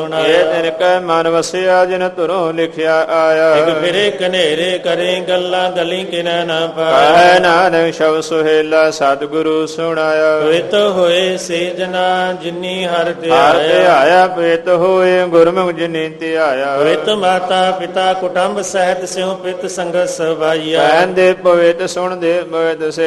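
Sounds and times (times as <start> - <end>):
man singing a hymn: 0.0 - 23.0.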